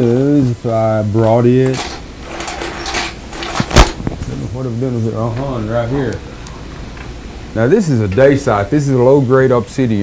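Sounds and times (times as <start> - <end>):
rummaging rustle and clatter: 1.3 - 4.0.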